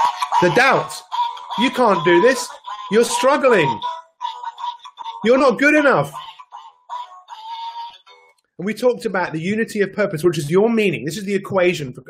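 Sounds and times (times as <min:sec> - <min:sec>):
toy electronic singing voice: 0:00.0 - 0:08.4.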